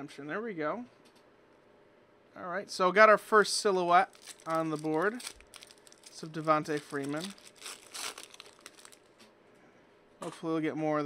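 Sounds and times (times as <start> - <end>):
foil wrapper crinkling: 3.9 - 9.2.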